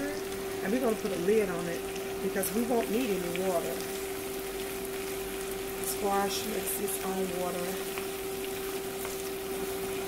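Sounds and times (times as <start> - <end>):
steady hum: 0.0 - 10.0
vegetables sizzling in skillet: 0.0 - 10.0.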